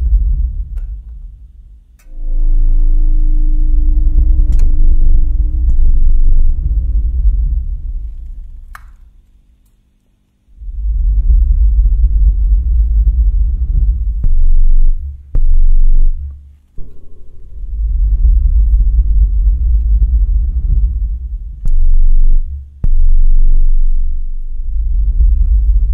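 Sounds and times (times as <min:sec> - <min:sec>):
deep electronic drone: 0:00.0 - 0:09.0, 0:10.5 - 0:25.9.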